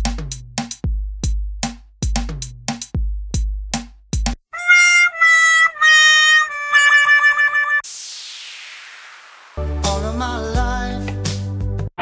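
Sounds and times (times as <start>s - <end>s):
buzzy electronic tone: 4.6s - 7.9s
downward hissing swoosh: 7.8s - 9.9s.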